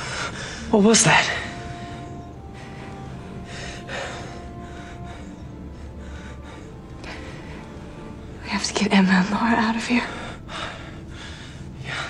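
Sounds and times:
faint sustained music note: 0.0 - 12.0.

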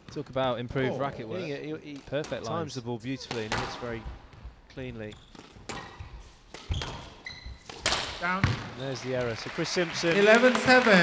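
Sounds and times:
shoes squeaking on court: 3.2 - 9.0
squash ball hits: 3.3 - 4.0, 5.6 - 8.7.

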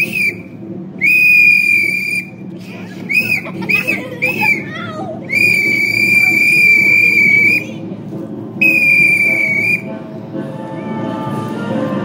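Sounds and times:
whistle blasts: 0.0 - 2.4, 3.1 - 7.7, 8.6 - 9.9.

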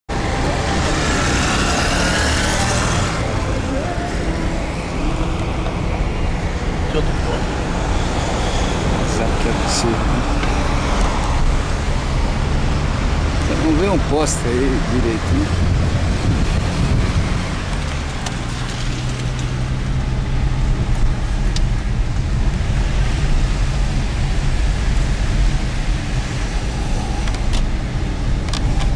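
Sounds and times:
car engine hum: 0.1 - 28.9
road traffic: 0.1 - 28.9
strong gusting wind on microphone: 15.2 - 28.9.

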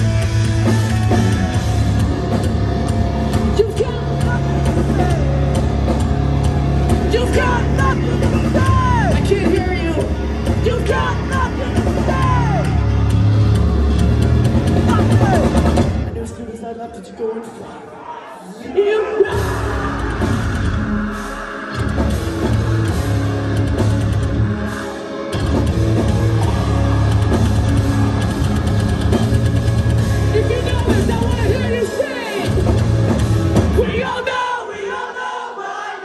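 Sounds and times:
live rock band playing: 0.0 - 16.4, 19.3 - 34.4
person yelling over music: 7.1 - 12.9, 30.3 - 32.6.

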